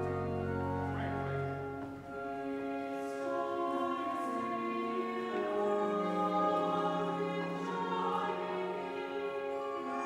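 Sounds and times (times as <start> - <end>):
church choir singing: 0.0 - 10.0.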